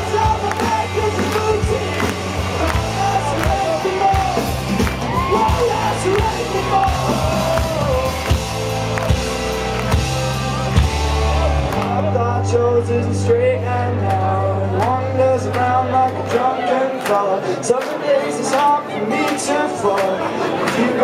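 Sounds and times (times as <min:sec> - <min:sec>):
man singing into a microphone: 0:00.0 - 0:08.4, 0:11.8 - 0:21.0
live folk-punk band playing: 0:00.0 - 0:21.0.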